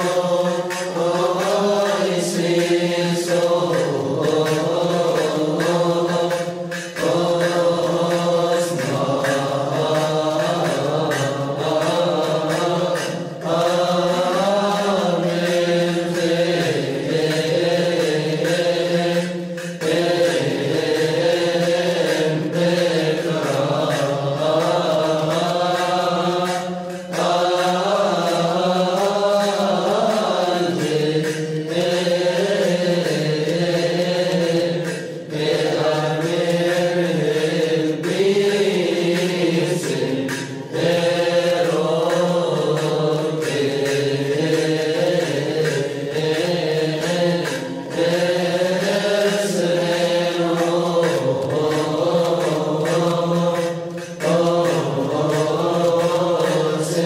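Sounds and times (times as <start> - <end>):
men chanting melismatic line: 0.0 - 57.0.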